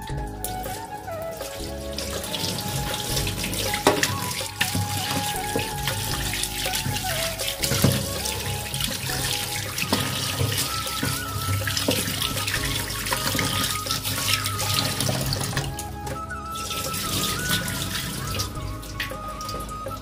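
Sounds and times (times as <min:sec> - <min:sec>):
background music: 0:00.0 - 0:20.0
water dripping: 0:00.0 - 0:20.0
hand rinsing chicken: 0:00.8 - 0:15.7.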